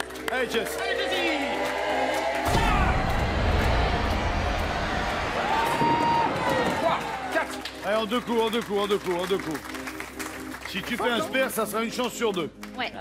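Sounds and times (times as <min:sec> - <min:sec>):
game-show music: 0:00.0 - 0:13.0
studio crowd shouting: 0:00.8 - 0:07.4.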